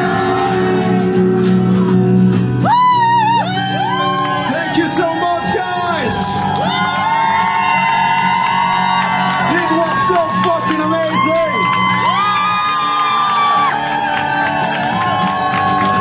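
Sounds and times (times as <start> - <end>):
acoustic guitar chords: 0.0 - 5.5.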